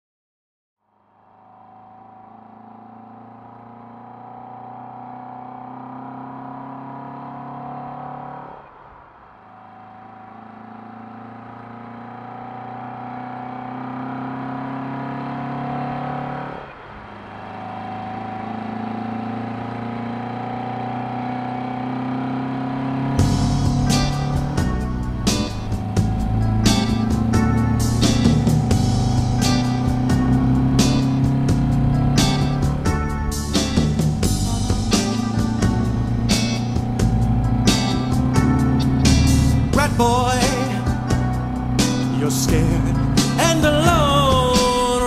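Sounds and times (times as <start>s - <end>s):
car engine accelerating through gears: 1.3s - 45.0s.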